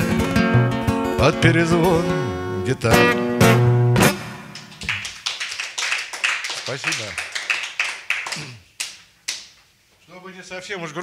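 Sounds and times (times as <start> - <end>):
acoustic guitar chord ringing: 0.0 - 4.5
audience clapping: 4.5 - 9.6.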